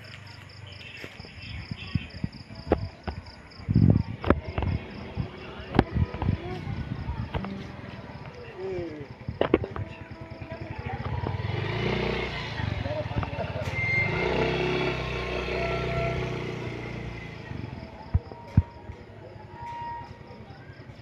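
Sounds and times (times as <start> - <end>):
vehicle engine passing by: 10.2 - 18.1.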